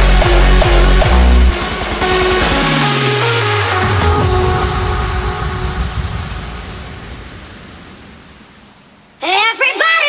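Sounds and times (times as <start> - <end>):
low bass rumble: 0.0 - 9.0
wash of noise: 1.5 - 9.2.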